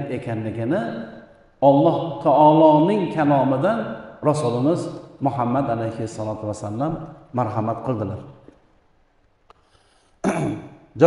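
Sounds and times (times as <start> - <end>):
man clearing his throat: 10.2 - 10.7.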